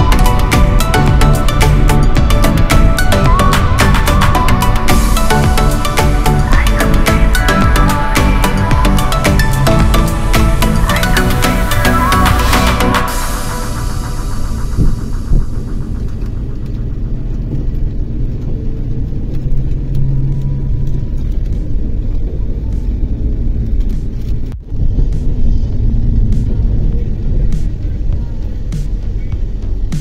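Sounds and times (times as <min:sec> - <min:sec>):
vehicle rumble and road noise: 0:00.0 - 0:30.0.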